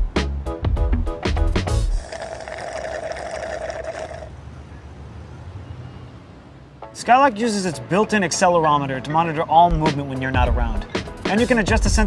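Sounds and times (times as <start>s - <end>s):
faint street background: 0.0s - 12.0s
slurping through a straw: 1.9s - 4.3s.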